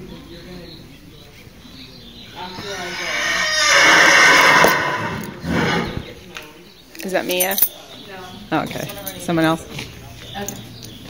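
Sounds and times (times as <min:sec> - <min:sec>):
horse whinnying: 0:02.6 - 0:06.1.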